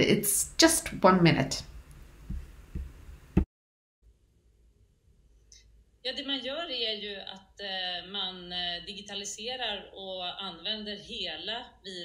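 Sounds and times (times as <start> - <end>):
soft low thumps: 2.2 - 3.4.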